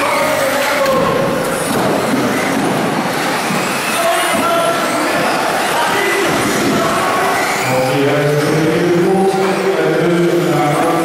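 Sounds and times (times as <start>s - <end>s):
hall echo: 0.0s - 11.0s
rc car motors whining: 0.0s - 11.0s.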